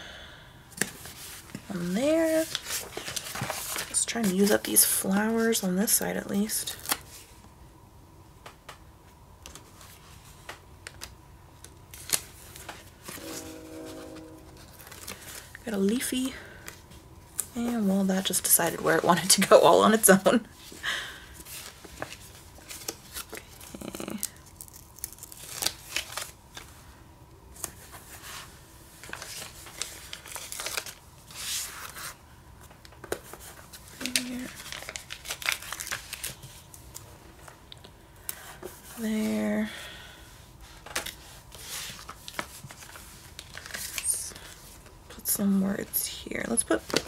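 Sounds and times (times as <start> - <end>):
paper rustling and crinkling: 0.8 - 5.5, 11.9 - 16.9, 21.4 - 26.8, 27.6 - 37.6, 40.6 - 44.9, 46.6 - 47.0
person humming: 23.7 - 24.3.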